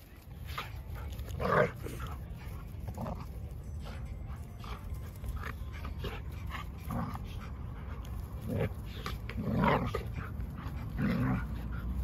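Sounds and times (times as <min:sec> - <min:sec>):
dogs play-fighting: 0:00.0 - 0:12.0.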